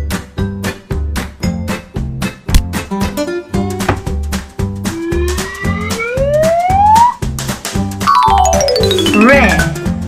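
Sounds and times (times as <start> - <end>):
background music with beat: 0.0 - 10.0
cartoon whistle rising in pitch: 4.9 - 7.2.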